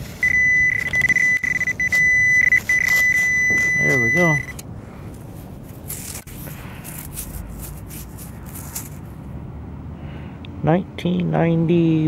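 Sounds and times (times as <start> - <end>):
fingers scraping through gravel: 1.9 - 4.4, 5.3 - 9.1.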